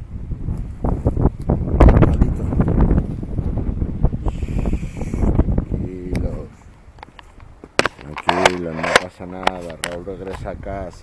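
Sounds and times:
wind on microphone: 0:00.0 - 0:11.0
man talking: 0:05.8 - 0:06.6, 0:08.0 - 0:11.0.

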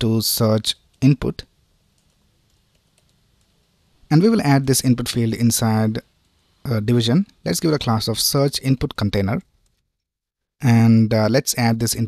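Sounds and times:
faint keyboard keystrokes: 0:01.9 - 0:03.6.

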